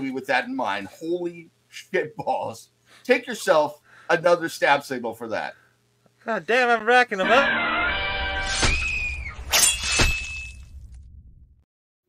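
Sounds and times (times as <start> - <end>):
held musical chord: 7.2 - 8.3.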